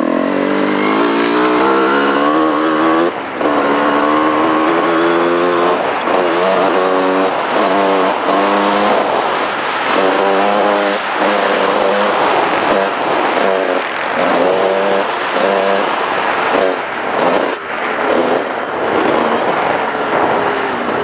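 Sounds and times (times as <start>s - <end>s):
dirt bike engine revving: 0.0s - 21.0s
wind rushing over microphone: 0.0s - 21.0s.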